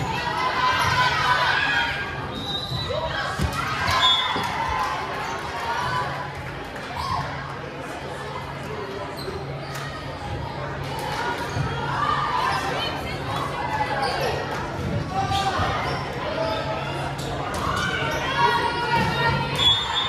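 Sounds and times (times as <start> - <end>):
people chattering: 0.0 - 20.0.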